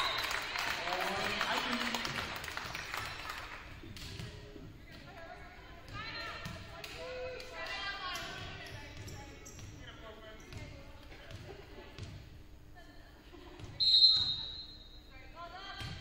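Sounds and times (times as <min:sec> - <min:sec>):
volleyball bouncing on wooden floor: 0:03.8 - 0:05.2, 0:05.8 - 0:12.3, 0:15.7 - 0:16.0
referee whistle blast: 0:13.8 - 0:15.0.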